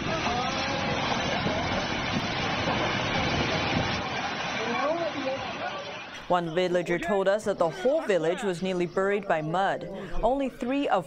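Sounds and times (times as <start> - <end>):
faint voices: 0.0 - 2.5, 3.1 - 11.0
rumble of crumbling masonry: 0.0 - 6.0.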